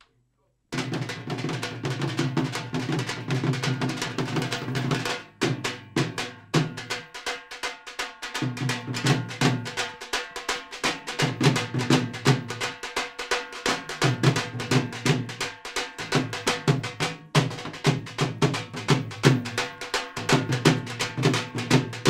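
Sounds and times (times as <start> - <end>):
live drumming: 0.8 - 22.0.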